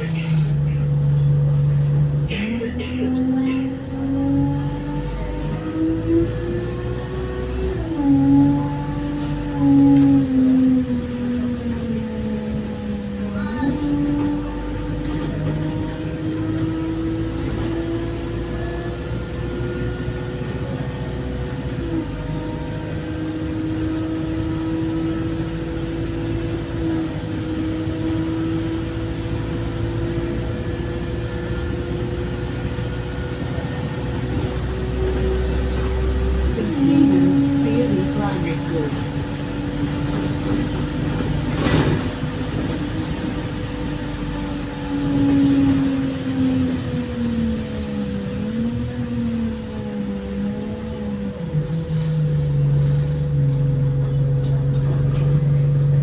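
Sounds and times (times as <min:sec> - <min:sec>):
bus engine and transmission: 0:00.0 - 0:56.0
constant high whine: 0:23.3 - 0:56.0.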